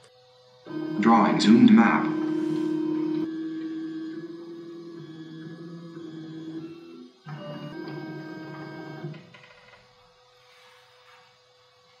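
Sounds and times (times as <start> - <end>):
stepper motors whining: 0.0 - 9.4.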